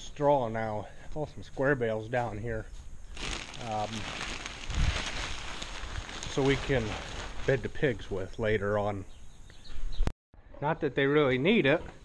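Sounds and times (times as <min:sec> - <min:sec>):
dry straw rustling and crackling: 0:03.1 - 0:08.5.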